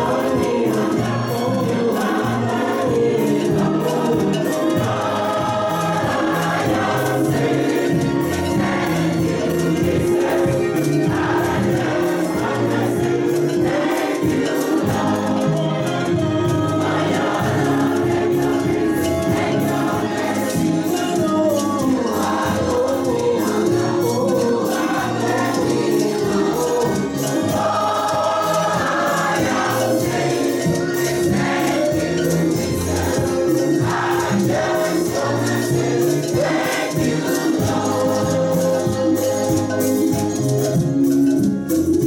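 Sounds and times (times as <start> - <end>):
congregation and choir singing: 0.0 - 42.0
instrumental accompaniment with beat: 0.0 - 42.0.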